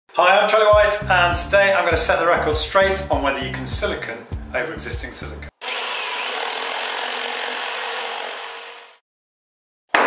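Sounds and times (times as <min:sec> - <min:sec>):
saw cutting wood: 0:05.5 - 0:09.0.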